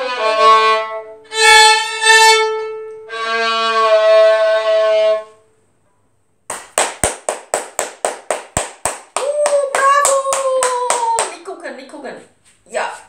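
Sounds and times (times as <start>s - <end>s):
violin bowed note: 0.0s - 5.5s
hands clapping in rhythm: 6.5s - 11.5s.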